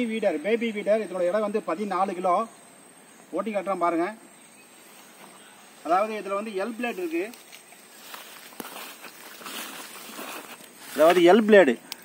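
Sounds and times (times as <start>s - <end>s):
footsteps in grass: 4.7s - 12.0s.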